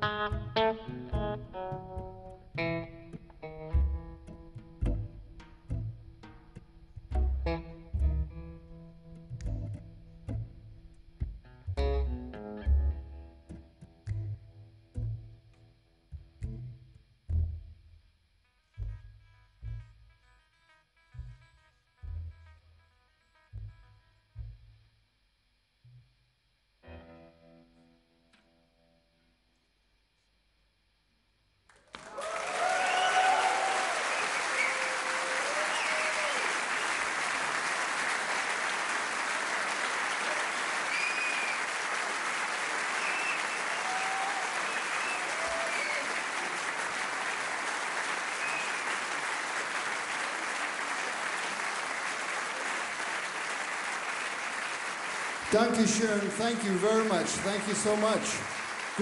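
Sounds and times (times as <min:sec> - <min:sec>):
soft electric guitar chord: 0:00.0 - 0:15.2
audience applause and cheers: 0:31.7 - 0:59.0.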